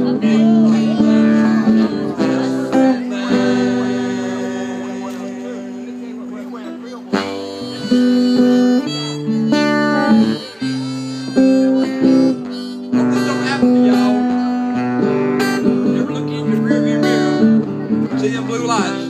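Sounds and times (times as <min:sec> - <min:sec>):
harmonica melody: 0:00.0 - 0:19.0
strummed acoustic guitar: 0:00.0 - 0:19.0.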